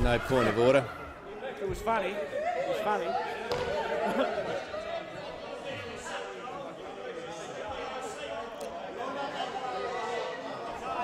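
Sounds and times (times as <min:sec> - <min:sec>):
chatter of many people: 0:00.0 - 0:11.0.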